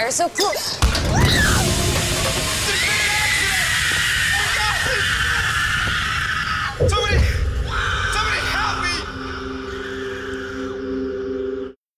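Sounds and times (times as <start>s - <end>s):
crash of a fall: 0.8s - 5.2s
low rumble: 0.8s - 11.6s.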